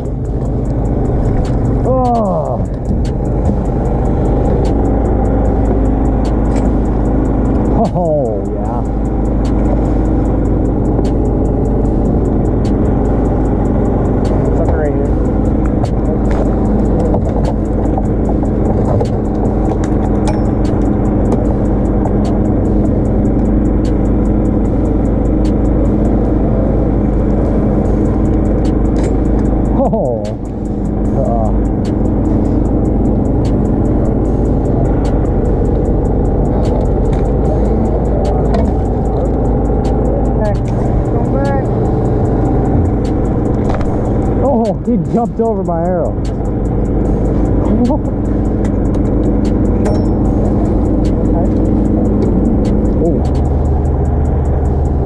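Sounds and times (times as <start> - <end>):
boat engine droning: 0.0 - 55.0
faint voices: 36.6 - 41.9.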